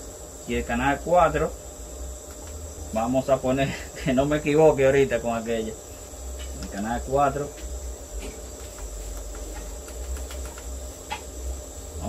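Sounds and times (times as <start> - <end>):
high-pitched whine: 0.0 - 12.0.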